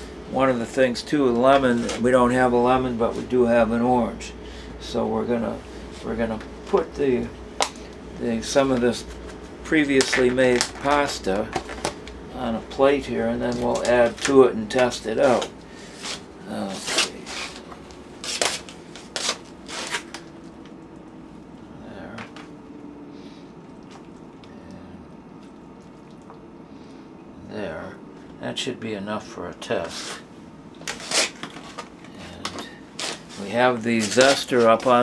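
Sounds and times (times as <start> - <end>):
food container scraping and rustling: 13.5 - 20.3, 29.9 - 35.0.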